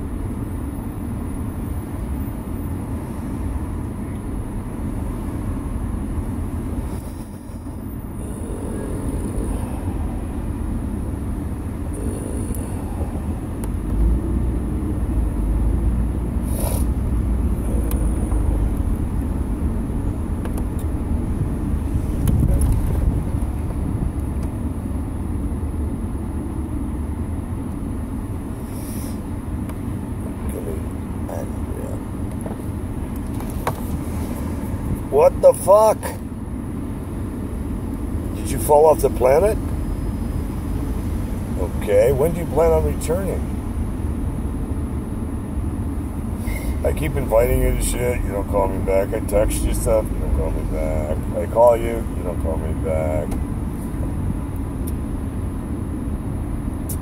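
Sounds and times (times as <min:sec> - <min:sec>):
car road and engine rumble: 0:00.0 - 0:57.0.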